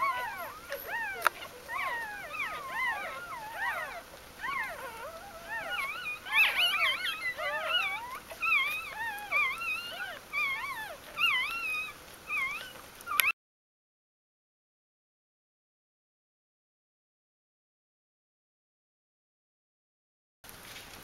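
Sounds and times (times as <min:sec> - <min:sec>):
puppies squeaking and whimpering: 0:00.0 - 0:13.4.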